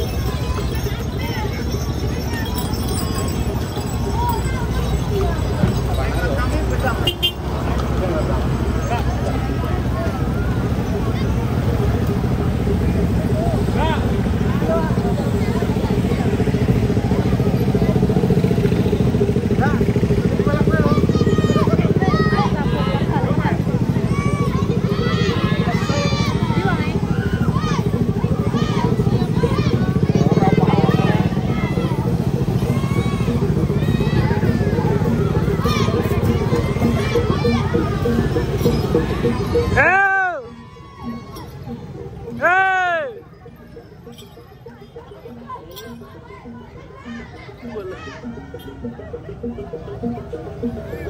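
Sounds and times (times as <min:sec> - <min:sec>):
crowd calling and talking: 0:00.0 - 0:51.0
small motorcycle engines running: 0:00.0 - 0:51.0.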